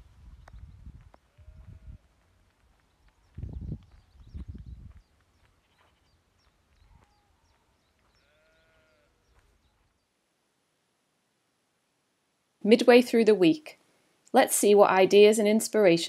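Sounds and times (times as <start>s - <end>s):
sheep bleating: 8.2s - 9.3s.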